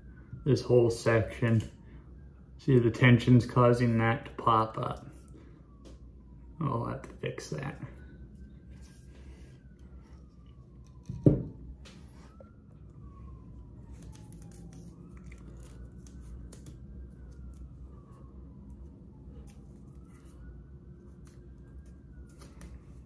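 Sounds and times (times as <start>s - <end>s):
faint siren wailing: 0.0s - 23.0s
tape being wrapped: 13.9s - 17.8s.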